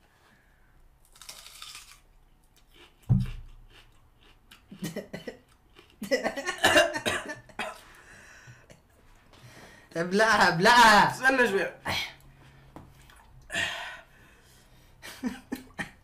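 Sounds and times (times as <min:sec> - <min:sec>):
person chewing onion: 0:01.0 - 0:06.2
low thump: 0:03.1 - 0:03.4
person coughing: 0:06.4 - 0:07.9.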